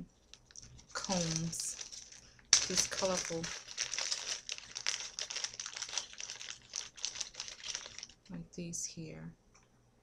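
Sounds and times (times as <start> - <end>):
crinkles and small clicks: 0.2 - 8.3.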